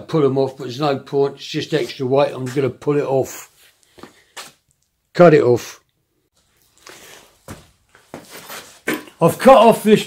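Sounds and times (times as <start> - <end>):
faint shuffling: 1.6 - 4.6, 6.4 - 8.8.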